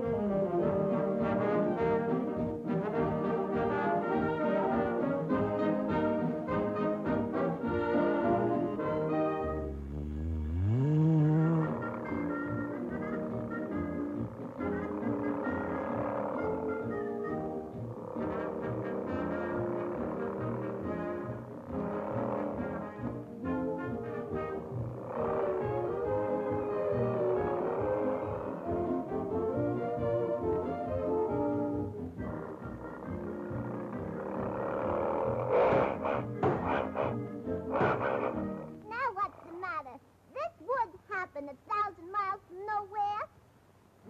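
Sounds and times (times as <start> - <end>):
brass-led orchestral cartoon music: 0.0 - 10.0, 11.3 - 38.8.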